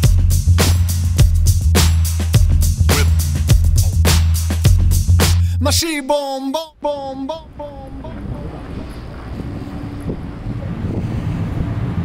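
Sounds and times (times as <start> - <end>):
car ferry low rumble: 6.8 - 12.0
wind blowing on microphone: 7.9 - 12.0.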